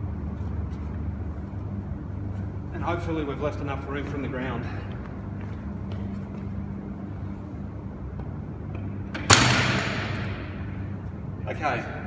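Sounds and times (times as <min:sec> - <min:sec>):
low steady hum: 0:00.0 - 0:12.0
barbell crashing to gym floor: 0:09.2 - 0:10.6.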